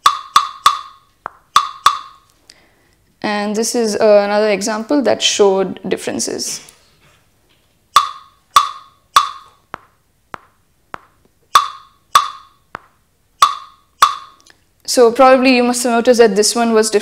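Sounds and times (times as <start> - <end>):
wood-block beats: 0.0 - 2.3, 7.9 - 14.5.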